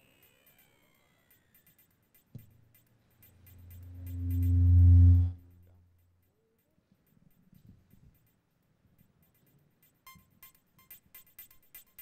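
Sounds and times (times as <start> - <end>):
deep bass synth note: 3.5 - 5.6.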